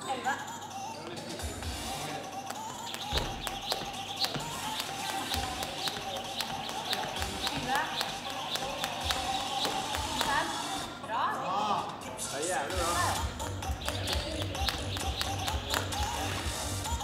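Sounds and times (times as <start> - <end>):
background music: 0.0 - 17.0
jump rope whipping floor: 2.4 - 10.7, 13.2 - 17.0.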